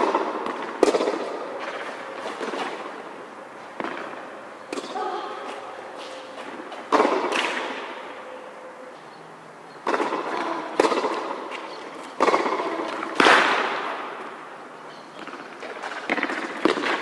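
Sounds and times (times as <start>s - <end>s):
tennis ball bounces: 0.0s - 2.9s, 6.4s - 7.9s, 9.8s - 14.3s, 15.1s - 17.0s
tennis racket strikes echoing: 6.9s - 8.1s, 9.8s - 11.6s, 12.2s - 14.3s.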